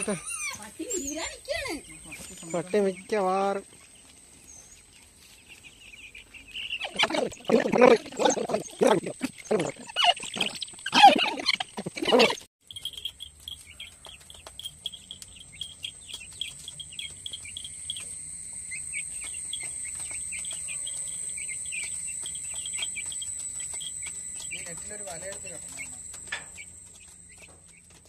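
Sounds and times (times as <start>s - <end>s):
chicks peeping: 0.0s - 28.0s
high-pitched whine: 14.5s - 28.0s.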